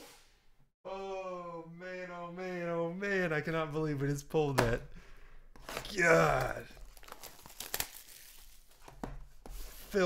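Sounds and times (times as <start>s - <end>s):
packaging crinkling and tearing: 5.6s - 8.9s.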